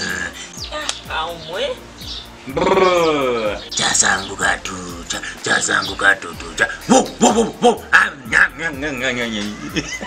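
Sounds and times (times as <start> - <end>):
man imitating dog barks: 2.5 - 3.6, 6.6 - 8.3
man whining like a dog: 6.9 - 7.9.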